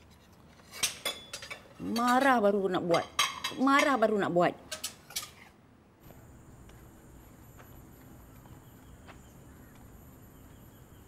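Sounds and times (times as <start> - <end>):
tableware clinking: 0.7 - 4.0.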